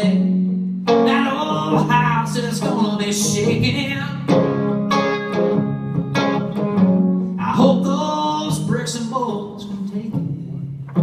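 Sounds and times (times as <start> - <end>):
guitar strumming chords: 0.0 - 11.0.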